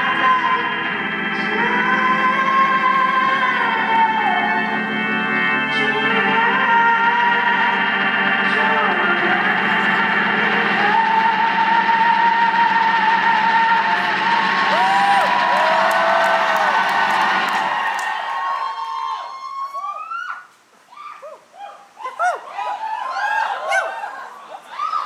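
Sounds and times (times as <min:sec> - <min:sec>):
rock band sustained chord: 0:00.0 - 0:17.9
audience whooping and cheering: 0:12.1 - 0:25.0.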